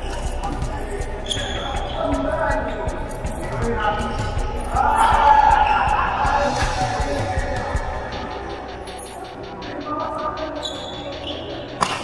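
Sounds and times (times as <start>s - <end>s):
players' voices: 0.0s - 12.0s.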